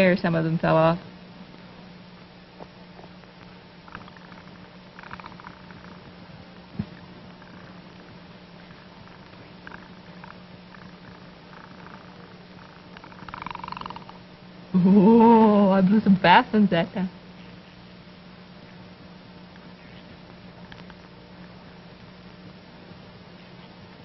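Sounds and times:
steady low hum: 0.0 - 24.0
bubbling through a bubble pipe: 3.8 - 6.1.

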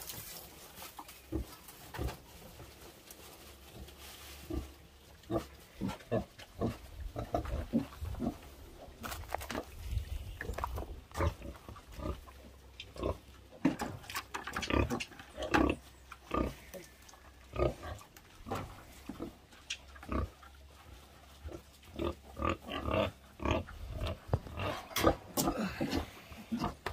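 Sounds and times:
pigs grunting: 4.4 - 8.5, 10.4 - 20.6, 21.4 - 26.9.

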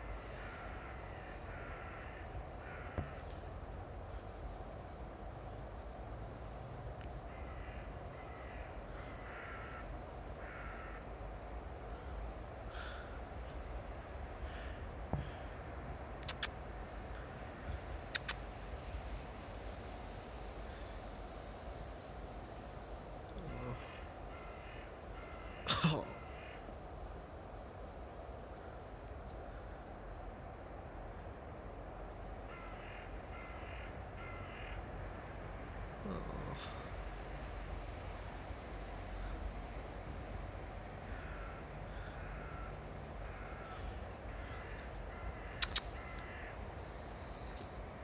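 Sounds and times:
crow cawing: 0.0 - 3.6, 7.3 - 12.1, 12.7 - 13.3, 14.3 - 15.5, 23.4 - 26.8, 32.4 - 36.9, 40.9 - 47.8
steady low rumble: 0.0 - 34.2
sharp click: 18.2 - 18.4, 45.6 - 46.0
person saying oh: 36.0 - 36.9.

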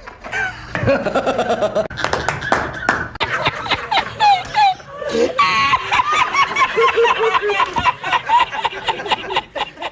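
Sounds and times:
man laughing in high squeals: 4.0 - 9.5.

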